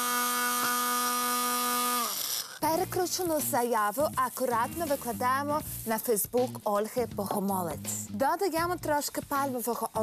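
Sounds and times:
hand blender motor whining: 0.0s - 2.9s.

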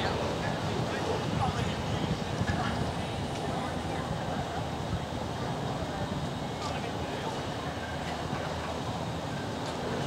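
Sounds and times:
gondola cableway rumbling: 0.0s - 10.0s.

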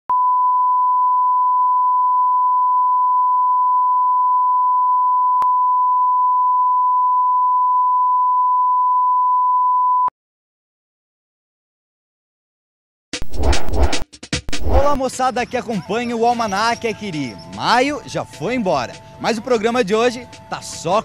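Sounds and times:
steady pure-tone test beep: 0.1s - 10.1s.

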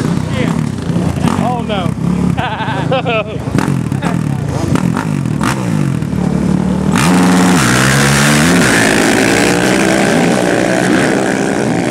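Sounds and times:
atv engines revving: 0.0s - 11.9s.

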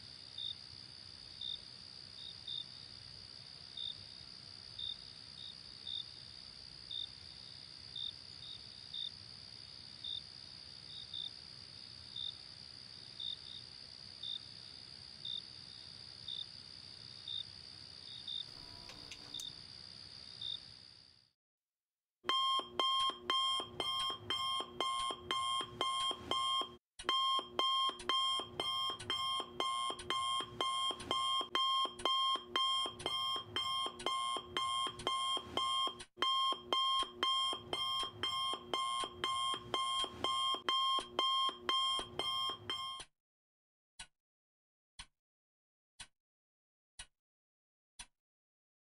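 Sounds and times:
crickets chirping: 0.1s - 21.2s
smartphone alarm beeping: 22.3s - 43.1s.

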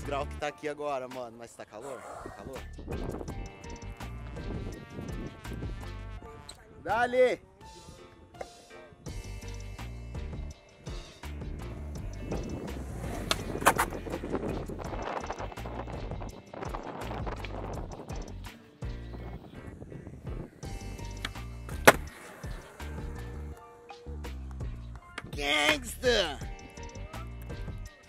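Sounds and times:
music with bass beat: 9.1s - 19.4s, 24.1s - 28.0s
skateboard wheels rolling on concrete: 10.9s - 26.0s
skateboard clacks: 12.0s - 14.2s, 21.1s - 23.6s.

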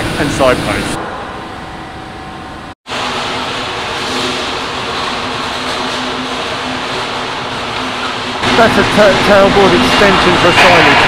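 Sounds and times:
factory machinery noise: 0.0s - 11.0s
low hum: 0.0s - 11.0s.

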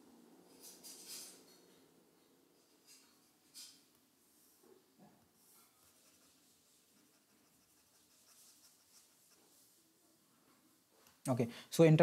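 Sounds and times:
stylus scratching on pen tablet: 5.5s - 9.7s.

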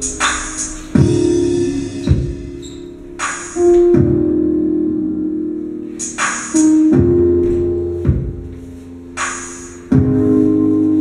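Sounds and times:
zouk dance music: 0.0s - 4.3s
deep bass note: 0.0s - 4.8s
held keyboard chords: 0.0s - 11.0s.

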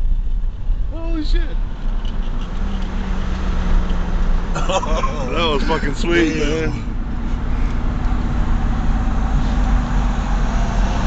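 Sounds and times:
vehicle engine and road noise: 0.0s - 11.0s.

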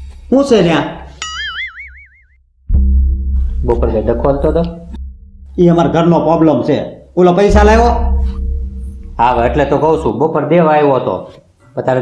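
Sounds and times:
comic boing sound effect: 1.2s - 2.4s.

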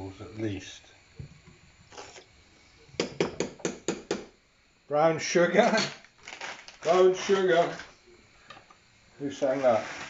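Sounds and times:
metal spoon knocking on saucepan: 3.0s - 4.2s.

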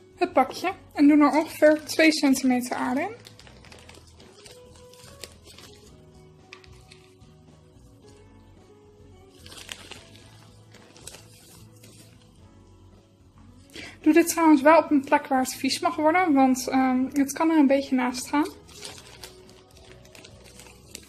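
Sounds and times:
faint background music: 0.0s - 21.0s
plastic bag crinkling: 1.3s - 7.2s, 9.2s - 12.3s, 18.4s - 21.0s.

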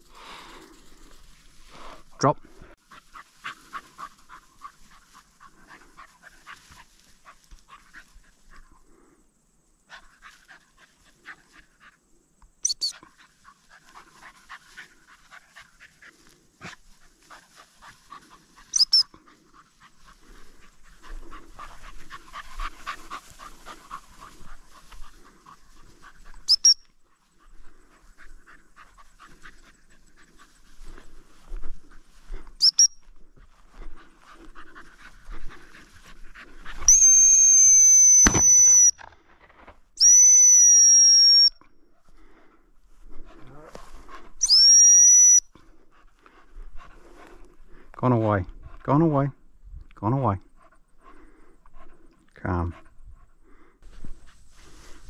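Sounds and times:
dog panting: 0.0s - 9.2s, 9.8s - 12.2s, 12.9s - 36.9s, 41.8s - 44.4s, 45.6s - 55.0s
dog whistle blasts: 12.6s - 12.9s, 18.7s - 19.0s, 26.5s - 26.8s, 32.6s - 33.0s, 36.9s - 39.0s, 40.0s - 41.6s, 44.4s - 45.5s
sharp high chirps: 12.6s - 13.0s, 18.8s - 19.1s, 26.5s - 26.8s, 32.6s - 33.0s, 36.9s - 39.0s, 40.0s - 41.5s, 44.4s - 45.4s.

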